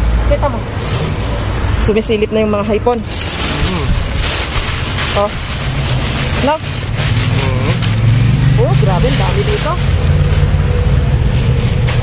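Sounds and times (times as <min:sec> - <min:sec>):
plastic bags rustling: 0:02.8 - 0:12.0.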